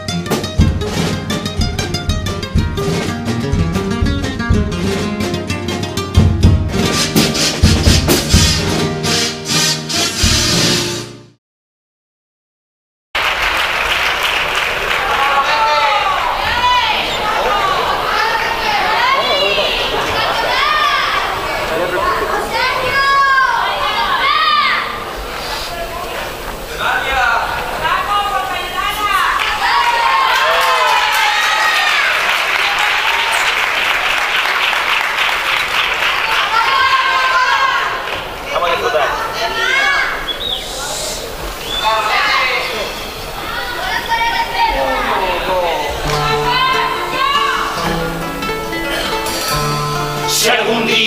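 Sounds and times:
acoustic guitars playing chords: 0:00.0 - 0:11.4, 0:45.3 - 0:51.0.

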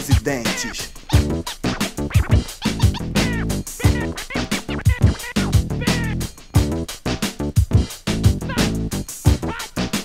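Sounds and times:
record scratching: 0:00.0 - 0:06.4, 0:08.4 - 0:10.0
hip hop beat: 0:00.0 - 0:10.0.

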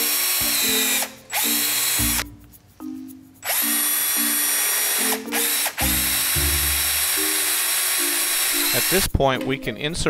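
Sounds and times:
cordless drill boring through metal: 0:00.0 - 0:02.2, 0:03.4 - 0:09.1.

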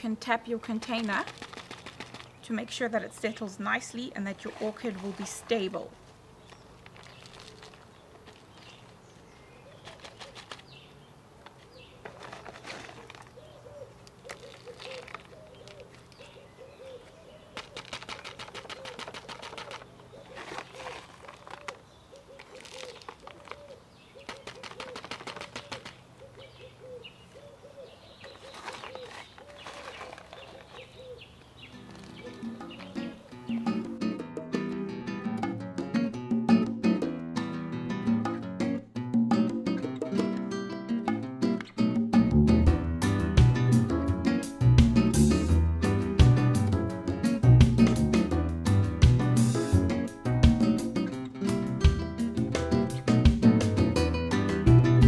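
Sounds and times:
bark chips rustling and crunching: 0:00.5 - 0:02.5, 0:04.4 - 0:09.0, 0:09.7 - 0:10.8, 0:11.4 - 0:16.4, 0:17.0 - 0:26.0, 0:28.2 - 0:33.2
bird cooing: 0:09.3 - 0:10.8, 0:13.2 - 0:17.9, 0:18.5 - 0:34.0
guitar jazz samba music: 0:31.8 - 0:55.0.

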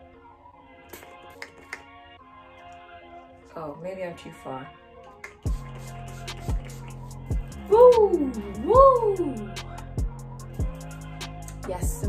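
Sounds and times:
hip-hop beat music: 0:00.9 - 0:02.1, 0:05.1 - 0:12.0
spray bottle hissing: 0:05.2 - 0:07.2.

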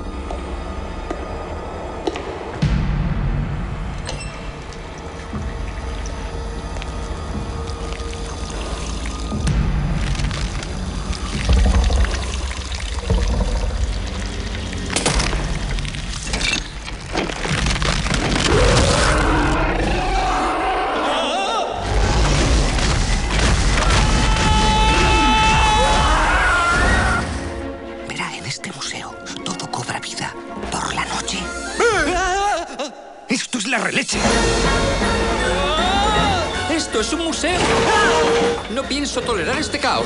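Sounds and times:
tense music: 0:00.0 - 0:33.3, 0:34.1 - 0:40.0
water running and pouring: 0:04.1 - 0:18.8.

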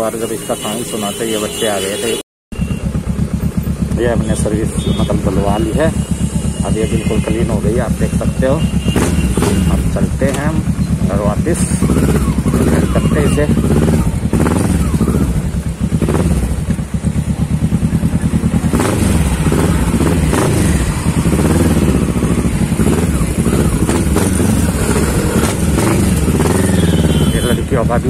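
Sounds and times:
motorcycle engine running: 0:02.5 - 0:28.0.

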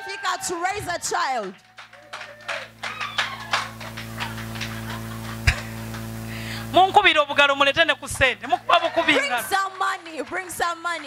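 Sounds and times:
hand claps: 0:01.4 - 0:06.1, 0:09.0 - 0:11.0.

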